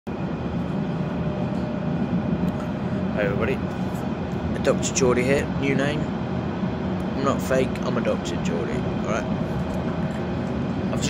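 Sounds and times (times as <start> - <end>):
faint steady hum: 0.1 - 11.0
train rumble inside carriage: 0.1 - 11.0.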